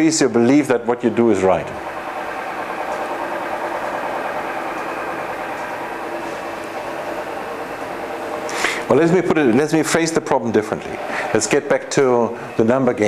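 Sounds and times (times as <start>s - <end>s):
steady mechanical hum: 0.0s - 13.0s.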